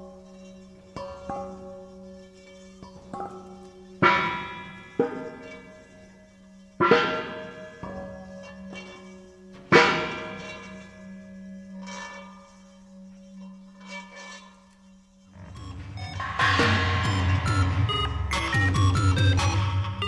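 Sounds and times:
metal bowls struck with mallet: 2.8s - 11.7s, 15.4s - 20.0s
steady low drone: 15.3s - 20.0s
heavy low pulsing bass: 15.4s - 20.0s.

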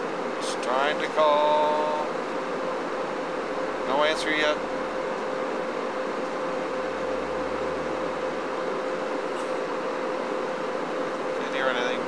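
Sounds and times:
jet engine and airflow rush: 0.0s - 12.0s
mid-pitched hum: 0.0s - 12.0s.

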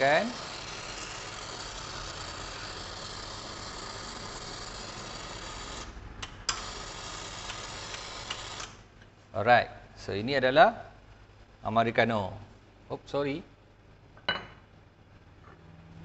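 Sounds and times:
hot water hissing into cup: 0.0s - 5.9s, 6.5s - 8.7s.

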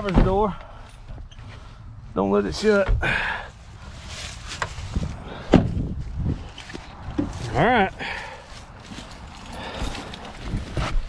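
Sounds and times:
rustling: 3.5s - 11.0s.

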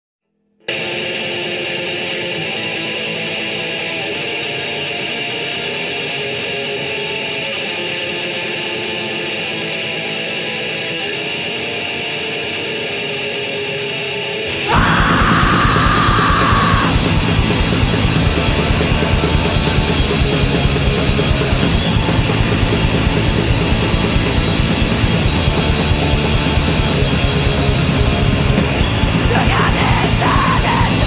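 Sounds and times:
distorted electric guitar chord: 0.6s - 31.0s.

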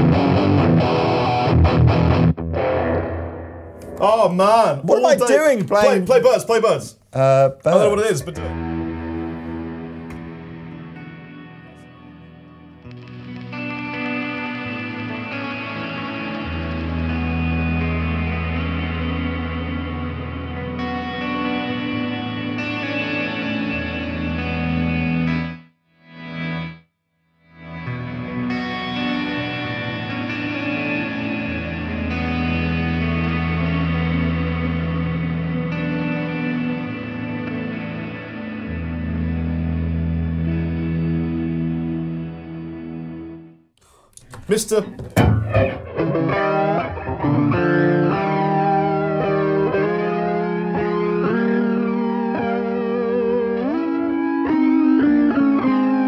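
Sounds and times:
electric guitar with effects: 0.0s - 4.0s, 7.7s - 26.8s, 27.6s - 56.0s.

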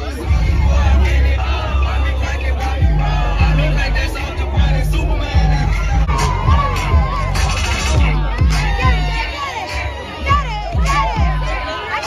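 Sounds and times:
crowd shouting and cheering: 0.0s - 12.0s
loud music with heavy bass beat: 0.0s - 12.0s.

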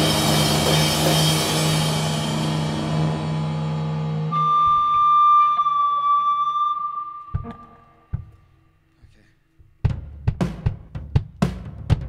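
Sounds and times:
electric guitar sustained note: 0.0s - 8.1s
band playing: 0.0s - 8.6s.

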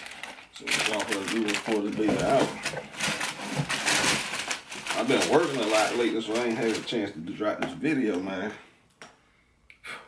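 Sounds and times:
tissue paper crinkling: 0.0s - 7.3s.

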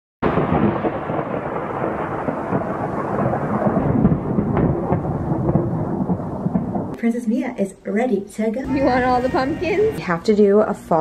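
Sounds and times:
rolling thunder rumble: 0.2s - 7.0s, 8.6s - 10.0s.

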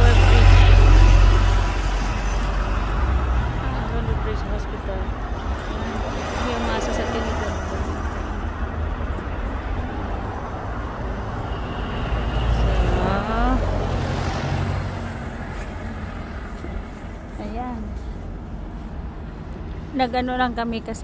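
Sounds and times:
bus passing: 0.0s - 21.0s
rumble of passing vehicles: 0.0s - 21.0s.

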